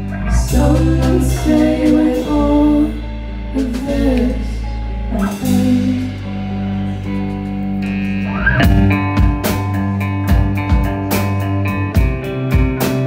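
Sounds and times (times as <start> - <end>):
bass guitar: 0.0 - 13.0
drums beating: 0.0 - 13.0
electric guitar: 0.0 - 13.0.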